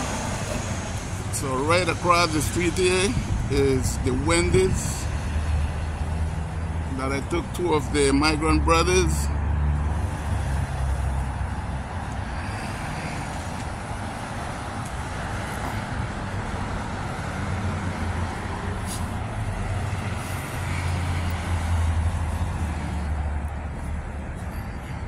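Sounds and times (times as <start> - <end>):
low rumble of passing vehicles: 0.0 - 25.0.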